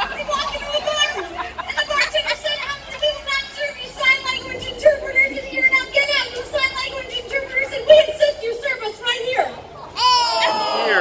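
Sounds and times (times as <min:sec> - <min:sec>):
high-pitched voices calling out: 0:00.0 - 0:11.0.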